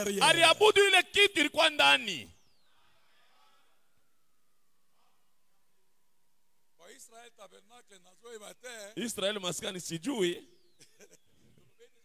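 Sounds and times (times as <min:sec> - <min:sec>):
man exclaiming into a microphone: 0:00.0 - 0:02.3.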